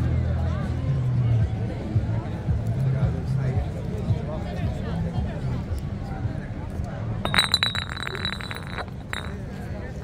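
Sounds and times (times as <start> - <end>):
metallic chinking: 7.3 - 9.5.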